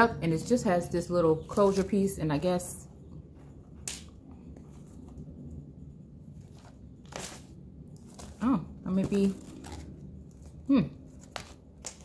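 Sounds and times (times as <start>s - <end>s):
paper journal handling: 6.4s - 12.0s.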